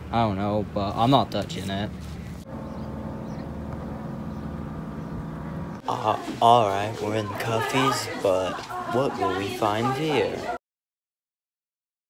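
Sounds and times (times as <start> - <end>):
steady motor hum: 2.3 - 6.0.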